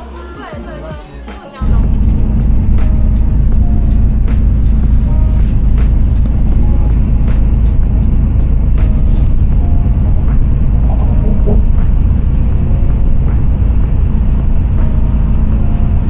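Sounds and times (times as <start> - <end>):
bus engine rumble from inside: 0.0 - 16.0.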